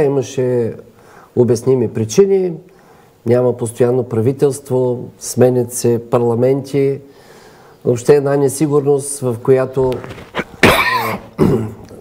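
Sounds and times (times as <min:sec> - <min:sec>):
man coughing: 0:10.3 - 0:11.9.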